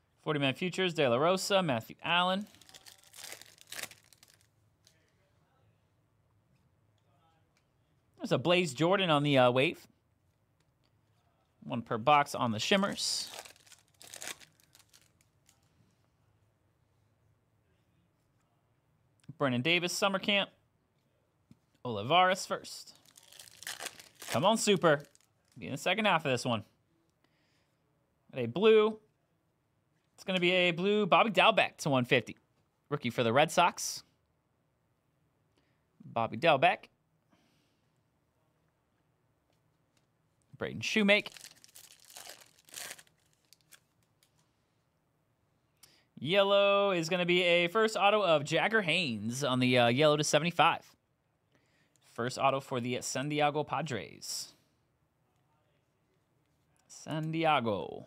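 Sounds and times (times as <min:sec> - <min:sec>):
foil wrapper tearing and crinkling: 0:02.4 - 0:04.5, 0:13.2 - 0:15.6, 0:23.0 - 0:25.3, 0:41.2 - 0:43.9.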